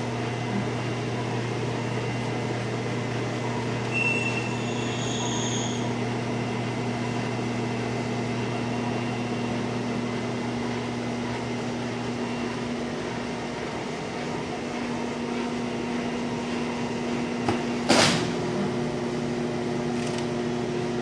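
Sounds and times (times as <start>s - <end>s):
machine rollers humming: 0.0s - 21.0s.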